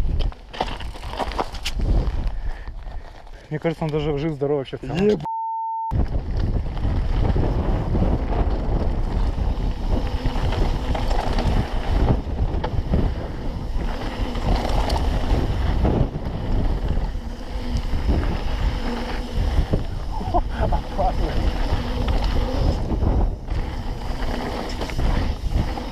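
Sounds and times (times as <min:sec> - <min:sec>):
wind buffeting microphone: 0:01.7 - 0:03.1, 0:05.9 - 0:25.9
tyres rumbling on gravel: 0:06.0 - 0:25.9.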